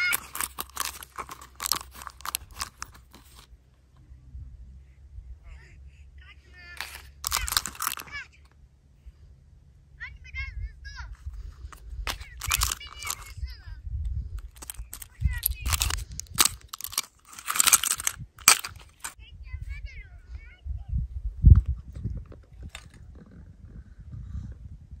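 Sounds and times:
plastic capsule clicking and crackling: 0.0s - 3.5s, 6.8s - 8.2s, 12.0s - 13.4s, 14.4s - 19.2s
low steady rumble: 0.0s - 25.0s
wind buffeting microphone: 13.1s - 16.7s, 19.2s - 25.0s.

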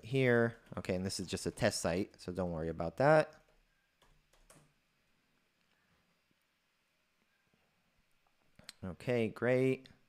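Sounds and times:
man speaking: 0.0s - 3.4s, 8.7s - 10.0s.

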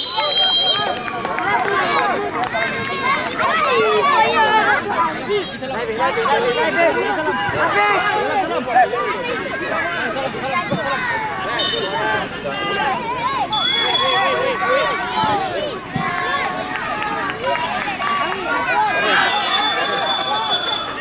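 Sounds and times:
whistle blasts: 0.0s - 1.0s, 13.5s - 14.4s, 19.2s - 21.0s
children and adults shouting: 0.0s - 21.0s.

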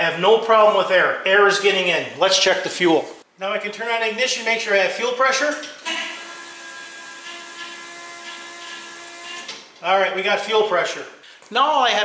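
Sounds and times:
electric fuel pump whining: 5.8s - 9.7s.

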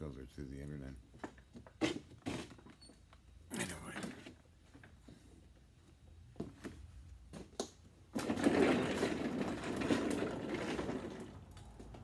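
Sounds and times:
office chair casters rolling: 8.0s - 12.0s.

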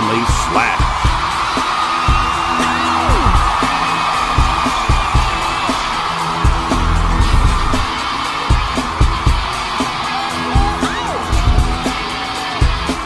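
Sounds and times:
crowd cheering and screaming: 0.0s - 13.0s.

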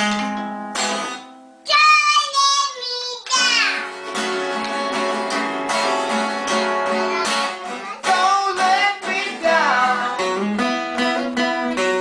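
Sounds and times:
acoustic guitar strumming: 0.0s - 12.0s
boy singing in high voice: 1.7s - 3.9s, 6.9s - 10.2s.

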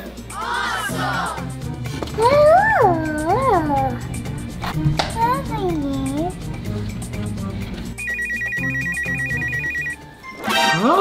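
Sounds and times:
electronic telephone ringing: 8.0s - 10.1s.

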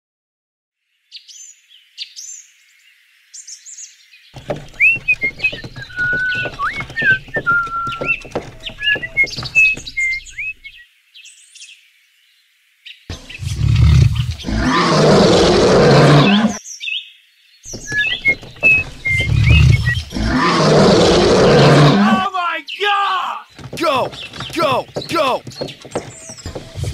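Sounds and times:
birds chirping and whistling: 3.4s - 11.4s, 13.1s - 17.1s, 17.7s - 22.9s, 23.5s - 26.9s.

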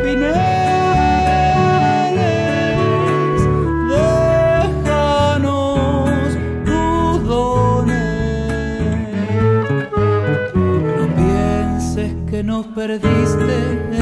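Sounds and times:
cello melody: 0.0s - 5.4s, 7.6s - 12.2s
classical guitar chords: 0.0s - 14.0s.

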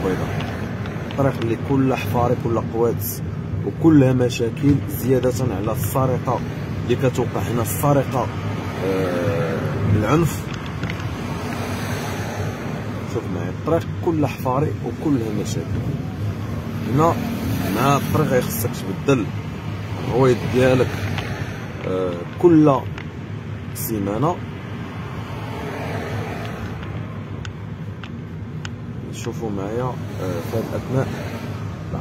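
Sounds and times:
car driving along road: 0.0s - 32.0s.

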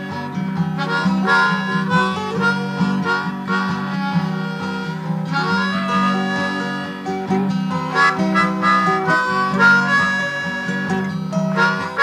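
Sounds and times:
guitar accompaniment: 0.0s - 12.0s
harmonica melody: 0.0s - 12.0s.

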